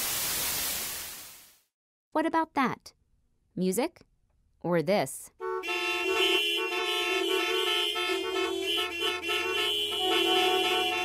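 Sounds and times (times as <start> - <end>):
car horns honking: 5.4 - 11.0.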